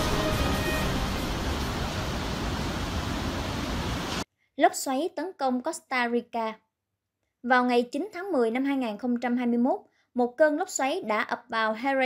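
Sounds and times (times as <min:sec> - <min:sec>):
heavy ocean surf: 0:00.0 - 0:04.2.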